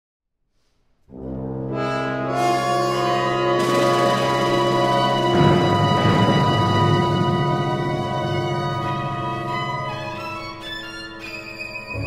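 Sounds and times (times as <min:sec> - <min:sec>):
orchestra brass chord: 0:01.1 - 0:11.2.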